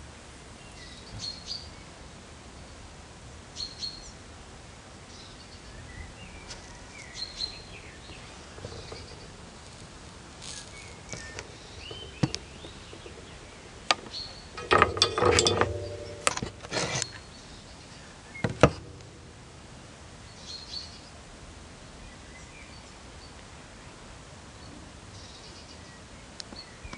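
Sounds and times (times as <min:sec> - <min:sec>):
low outdoor hiss: 0:00.0 - 0:26.9
songbirds chirping: 0:03.5 - 0:26.9.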